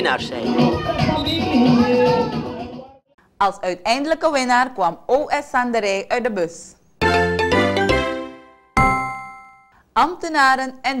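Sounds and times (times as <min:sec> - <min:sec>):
bell-like ding: 0:08.8 - 0:09.8.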